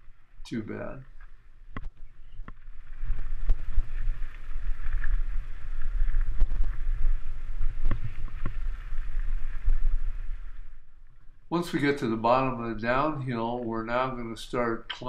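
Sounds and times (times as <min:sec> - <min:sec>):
wind on microphone: 0:01.7 - 0:14.2.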